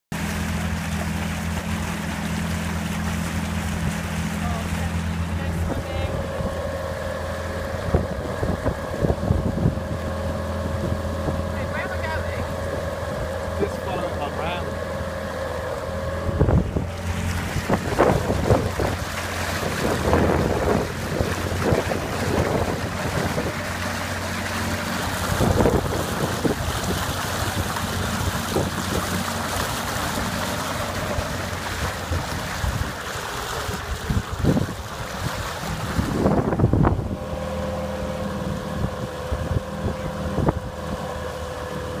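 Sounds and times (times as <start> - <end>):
outboard motor running: 0.0 - 42.0
water rushing past hull: 0.0 - 42.0
wind buffeting microphone: 7.6 - 13.4, 16.1 - 42.0.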